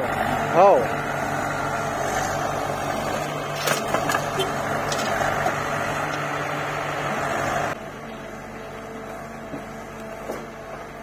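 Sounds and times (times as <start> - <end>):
diesel engines humming: 0.0 - 11.0
engine whine: 0.0 - 11.0.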